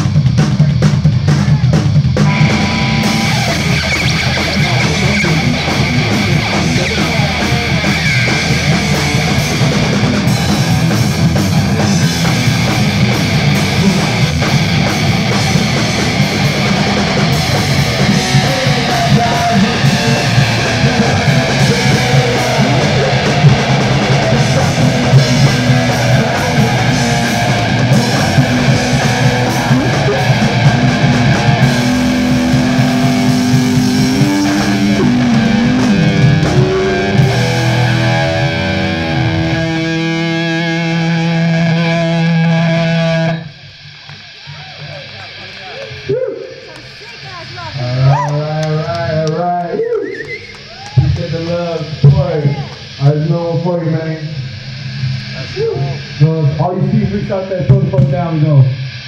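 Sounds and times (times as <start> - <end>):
bass guitar: 0.0 - 59.0
distorted electric guitar: 0.0 - 59.0
drums: 0.0 - 59.0.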